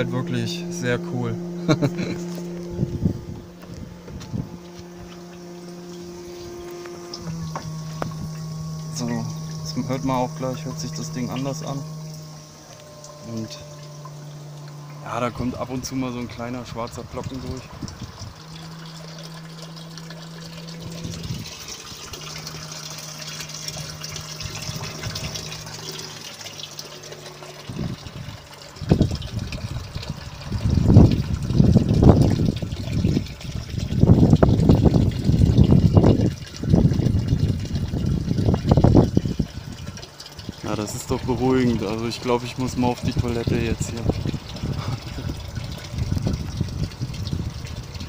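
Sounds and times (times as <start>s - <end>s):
water pump humming: 0.0s - 48.0s
water trickling: 0.0s - 48.0s
rumbling gusts: 2.0s - 5.3s.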